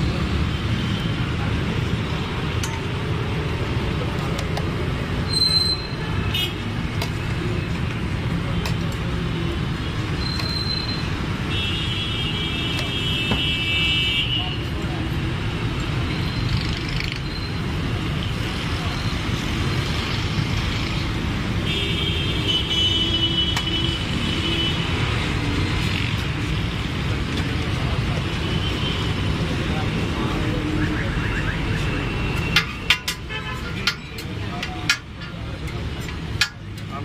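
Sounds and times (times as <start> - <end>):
street traffic noise: 0.0 - 37.0.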